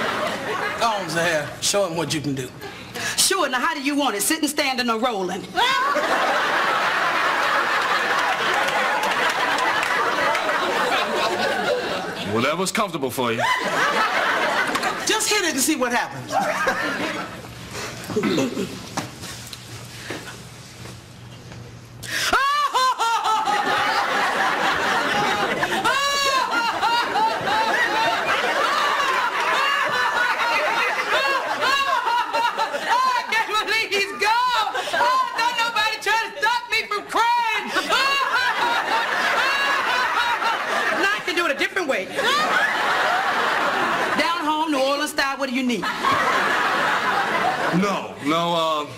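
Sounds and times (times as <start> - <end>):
audience laughter: 0.0 - 1.0, 5.6 - 12.3, 13.4 - 15.2, 16.2 - 18.9, 22.3 - 36.0, 37.6 - 44.6, 45.6 - 48.0
woman wailing and sobbing: 22.2 - 23.5, 25.6 - 27.7, 31.2 - 38.4.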